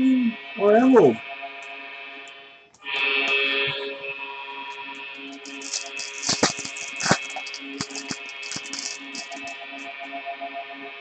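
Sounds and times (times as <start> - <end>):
foil pack crinkling and tearing: 5.4 - 9.5.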